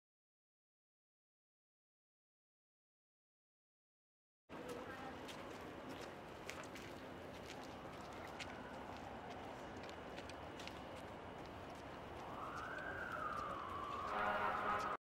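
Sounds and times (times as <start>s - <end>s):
faint street noise: 4.5s - 15.0s
footsteps on pavement: 4.5s - 15.0s
siren wailing: 12.1s - 15.0s.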